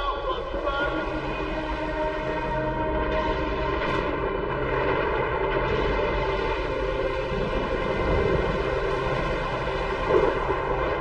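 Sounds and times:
dark drone soundtrack: 0.0s - 11.0s
low rumble: 0.0s - 11.0s.

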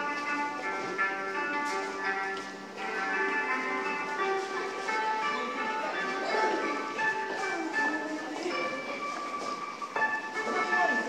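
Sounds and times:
background music with held notes: 0.0s - 11.0s.

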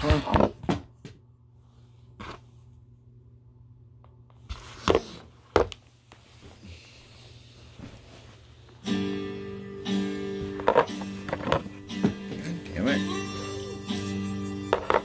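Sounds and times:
low steady hum: 0.0s - 15.0s
guitar strum: 8.8s - 15.0s.

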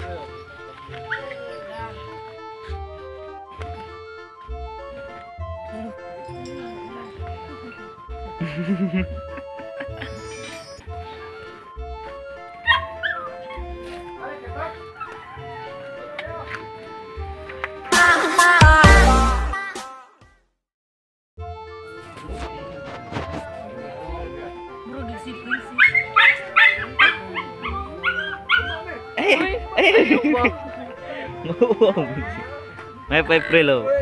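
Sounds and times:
background music: 0.0s - 20.2s, 21.4s - 34.0s
small dog yelping: 1.0s - 2.1s, 12.6s - 13.6s, 14.9s - 15.8s, 25.5s - 29.0s.

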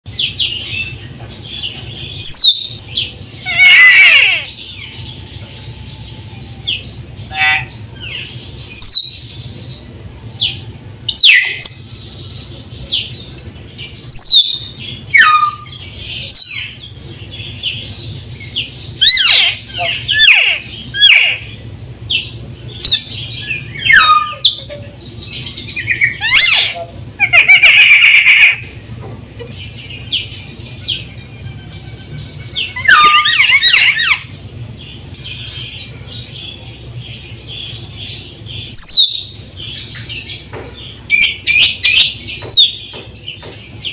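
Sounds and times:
steady low hum: 0.1s - 43.9s
harsh bird chattering: 0.2s - 5.0s, 7.2s - 9.6s, 12.6s - 28.8s, 29.4s - 43.9s.

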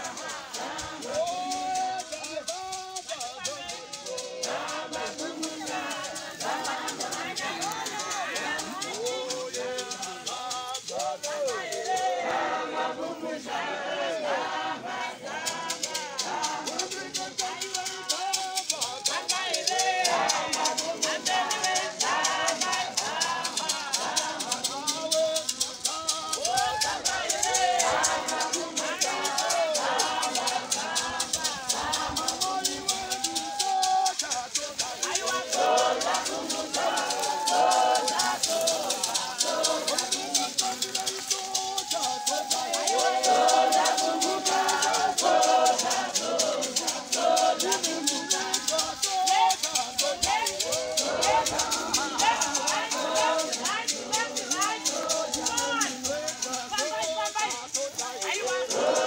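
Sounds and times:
fast shaker rhythm: 0.0s - 59.0s
voices singing church song: 0.0s - 59.0s.

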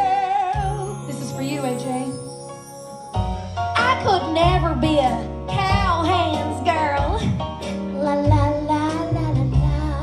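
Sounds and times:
live accompaniment: 0.0s - 10.0s
low bass line: 3.2s - 10.0s
woman singing a show tune: 3.8s - 7.3s.

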